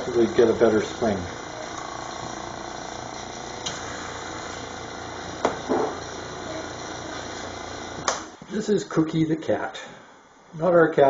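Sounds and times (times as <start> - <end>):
small vacuum pump running: 0.0 - 8.5.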